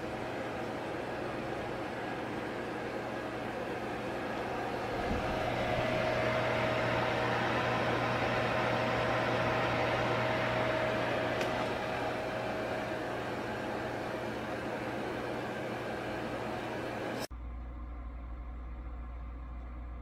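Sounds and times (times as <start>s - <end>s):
faint steady whine: 0.0s - 20.0s
heater fan whirring: 0.0s - 20.0s
low hum: 0.0s - 20.0s.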